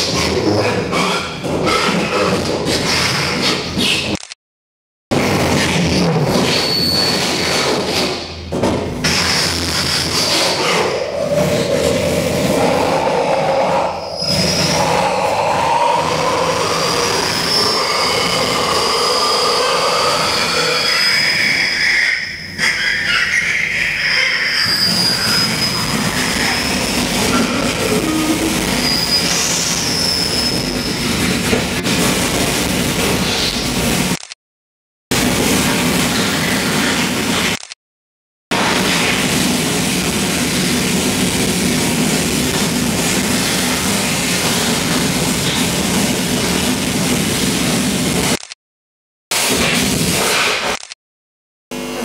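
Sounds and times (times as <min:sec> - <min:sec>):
harsh electronic noise music: 0:20.1 - 0:34.4.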